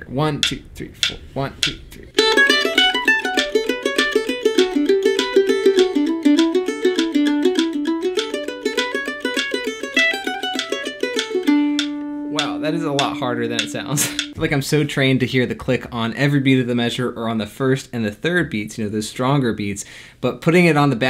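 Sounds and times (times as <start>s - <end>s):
metronome clicks: 0.4s - 14.4s
mandolin playing fast tune: 2.1s - 14.4s.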